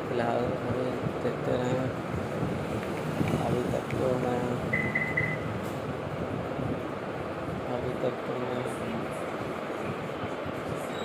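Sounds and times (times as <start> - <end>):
steady background noise: 0.0 - 11.0
short high beeps: 4.8 - 5.5.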